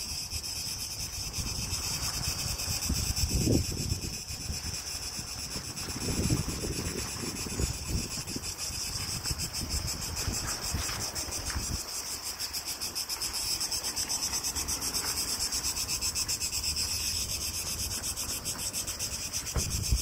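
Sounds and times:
cicadas buzzing: 0:00.0 - 0:20.0.

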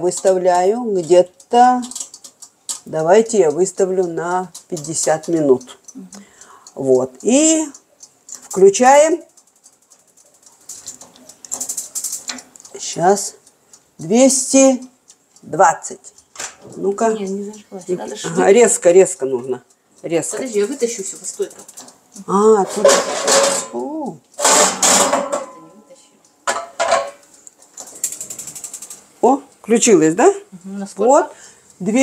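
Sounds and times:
metal oven rack scraping: 0:22.6 - 0:25.7.

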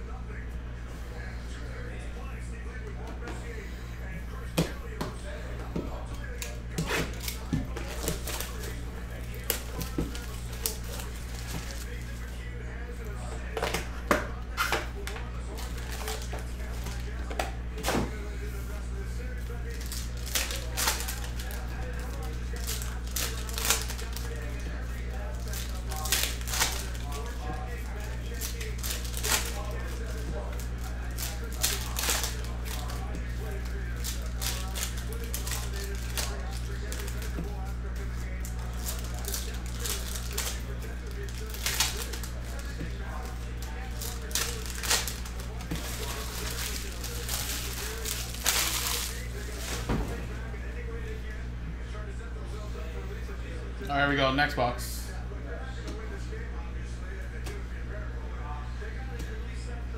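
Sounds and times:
steady electrical hum: 0:00.0 - 0:59.9
foil card packs crinkling: 0:03.3 - 0:50.2.

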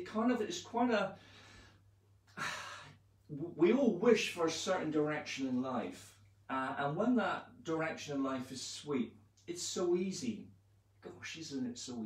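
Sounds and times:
man breathing: 0:01.2 - 0:03.0
man sighing: 0:02.3 - 0:03.0.

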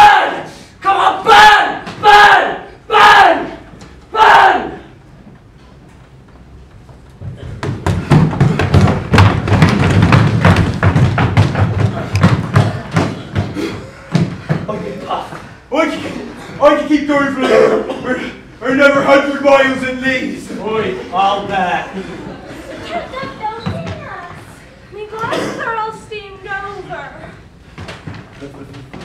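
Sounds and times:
man shouting: 0:00.0 - 0:04.9, 0:15.1 - 0:21.0
people running on wooden stage: 0:03.0 - 0:15.6, 0:20.8 - 0:25.4, 0:27.4 - 0:29.0.

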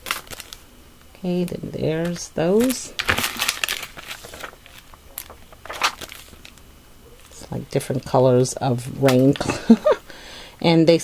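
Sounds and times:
plastic packets crinkling: 0:00.0 - 0:00.6, 0:01.4 - 0:07.5.

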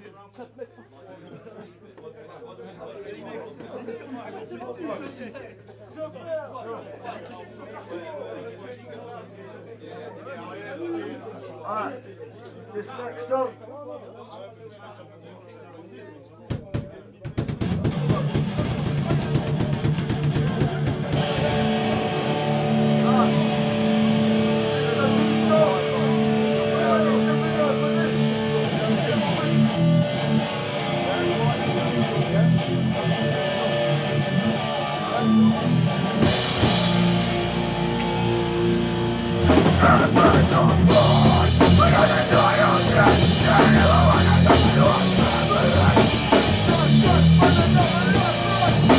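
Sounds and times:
drum kit: 0:16.5 - 0:24.6, 0:35.7 - 0:48.9
hardcore band playing live: 0:17.4 - 0:48.9
electric guitar: 0:17.8 - 0:48.9.

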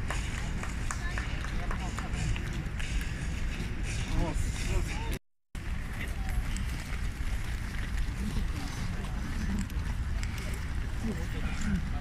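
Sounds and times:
passers-by voices: 0:00.0 - 0:12.0
traffic rumble: 0:00.0 - 0:12.0
wind: 0:00.0 - 0:12.0.

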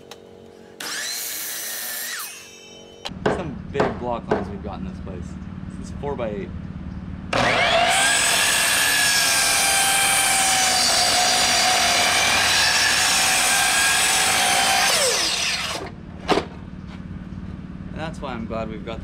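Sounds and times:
miter saw cutting wood: 0:00.8 - 0:03.0, 0:07.3 - 0:16.0.

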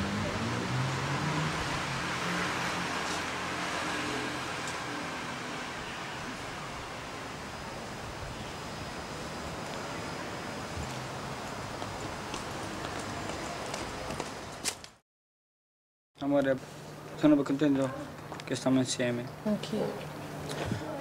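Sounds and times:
outdoor broad hiss: 0:01.3 - 0:12.1.

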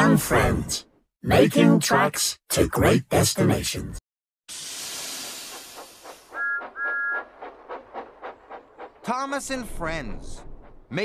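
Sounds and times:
steam hissing: 0:04.5 - 0:09.1
steam engine chuffing: 0:04.5 - 0:11.0
two-note train whistle toots: 0:06.4 - 0:07.3.

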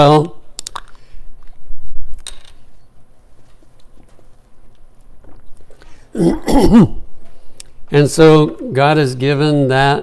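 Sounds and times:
man clearing his throat: 0:06.1 - 0:07.1.

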